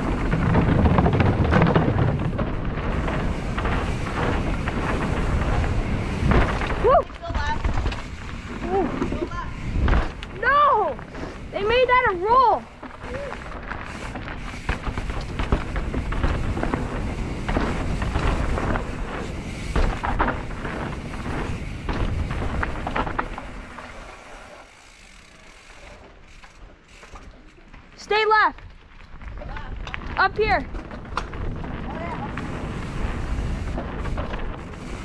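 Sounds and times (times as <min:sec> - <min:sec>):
bike knocks and rattles: 0:00.0 - 0:35.0
bike tyres rolling over dirt: 0:00.0 - 0:35.0.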